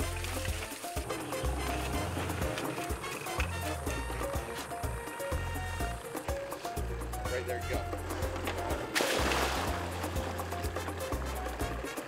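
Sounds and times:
background music with bass: 0:00.0 - 0:12.0
object splashing into water: 0:08.9 - 0:10.4.

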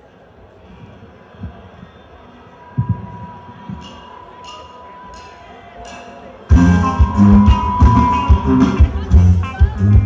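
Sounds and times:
faint stage noise: 0:00.0 - 0:10.0.

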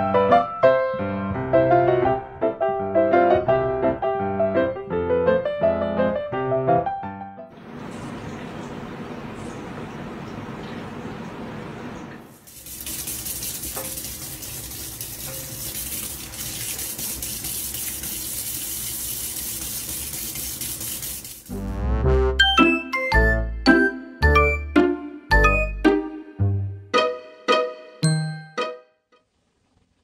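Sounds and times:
tap water running into sink: 0:07.5 - 0:21.6
jingly tune with bass beat: 0:21.5 - 0:28.9.

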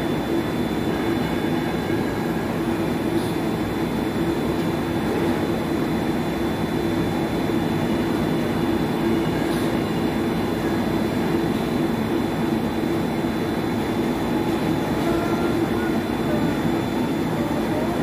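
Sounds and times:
extrusion machine humming: 0:00.0 - 0:18.0.

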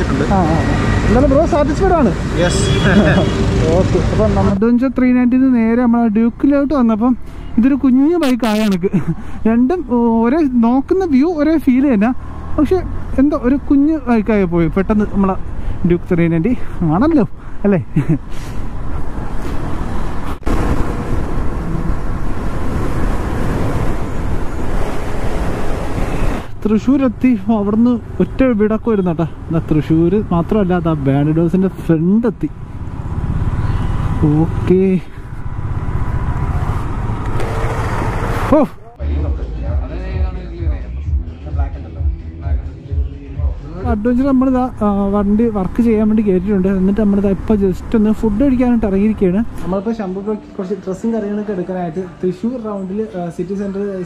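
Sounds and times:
man talking: 0:00.0 - 0:18.2, 0:26.6 - 0:32.6, 0:34.2 - 0:35.2, 0:38.5 - 0:54.0.

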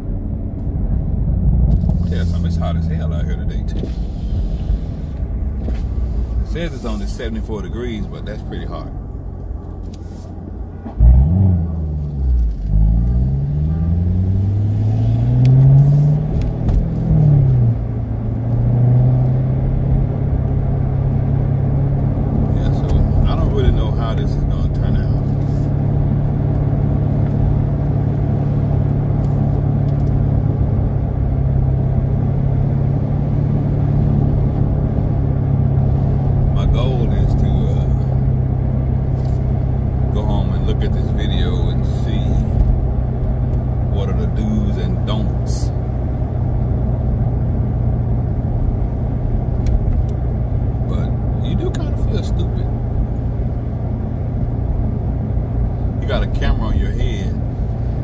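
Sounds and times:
car engine accelerating hard: 0:00.0 - 0:10.0, 0:10.8 - 0:58.0.

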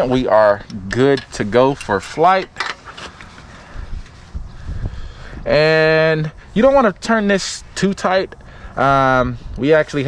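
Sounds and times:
wind rumbling on microphone: 0:03.6 - 0:07.7, 0:08.3 - 0:10.0.

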